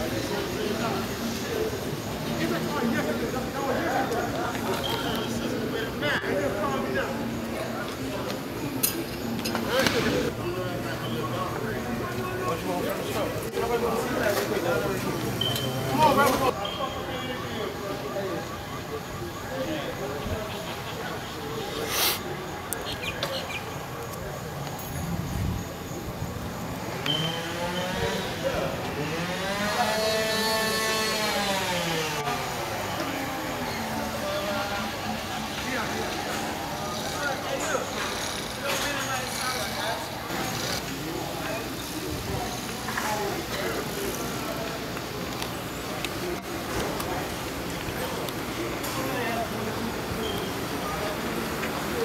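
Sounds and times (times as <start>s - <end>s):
people chattering: 0.0s - 52.0s
engine revving: 27.1s - 32.6s.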